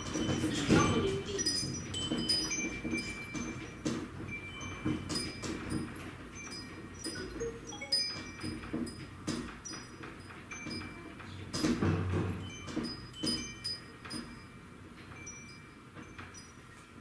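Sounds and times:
metal wind chimes tinkling: 0.0 - 17.0.

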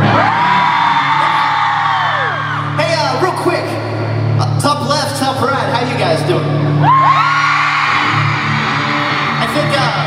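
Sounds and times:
crowd screaming: 0.0 - 2.8, 6.8 - 10.0
high held scream: 6.8 - 9.5.

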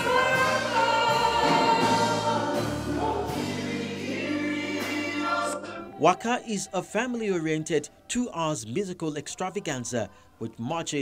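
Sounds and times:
chorus singing gospel-style: 0.0 - 10.9.

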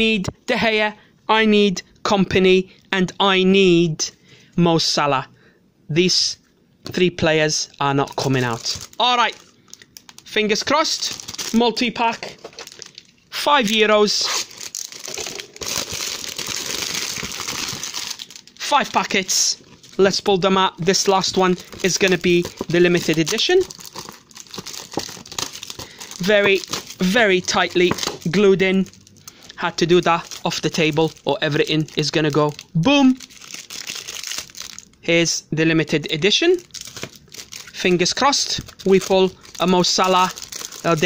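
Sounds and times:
plastic wrapper crinkling: 7.6 - 35.0, 36.5 - 41.0.

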